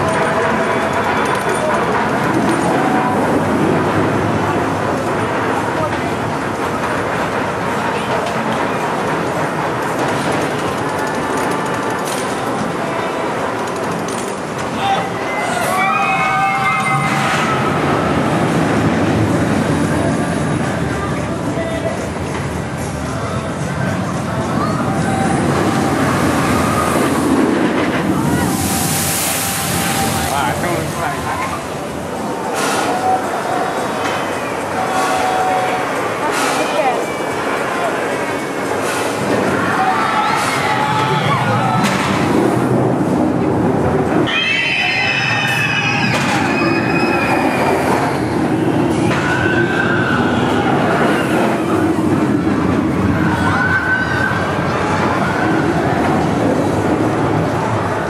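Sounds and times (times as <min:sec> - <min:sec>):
roller coaster train on track: 0:00.0 - 0:58.0
riders screaming: 0:14.8 - 0:17.9, 0:44.2 - 0:48.4
hiss of spraying water: 0:28.5 - 0:30.3.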